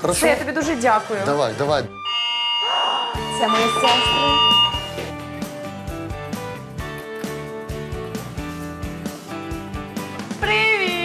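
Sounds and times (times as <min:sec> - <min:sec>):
electronic doorbell chime: 0:01.9 - 0:05.1
background music with a beat: 0:03.2 - 0:11.0.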